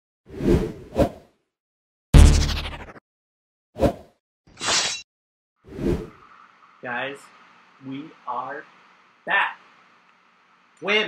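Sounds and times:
heavy impact: 2.2s - 2.9s
short swoosh: 2.2s - 3.0s
whoosh into sharp hit: 2.2s - 3.0s.

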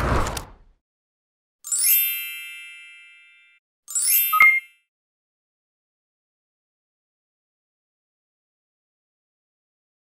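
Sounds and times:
glittery chime sound effects: 1.7s - 4.9s.

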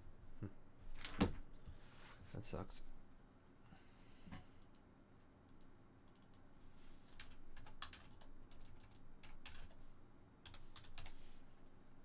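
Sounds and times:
computer keyboard typing: 5.5s - 6.4s, 7.1s - 9.8s, 10.4s - 11.2s.

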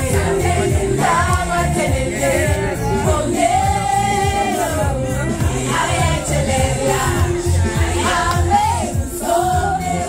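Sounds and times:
backing track with heavy bass: 0.0s - 10.0s
person singing karaoke: 0.0s - 10.0s.

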